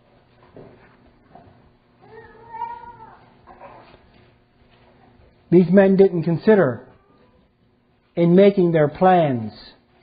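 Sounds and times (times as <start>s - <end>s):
high-pitched cry: 2.0s - 3.2s
preacher speaking: 5.5s - 6.9s, 8.2s - 9.8s.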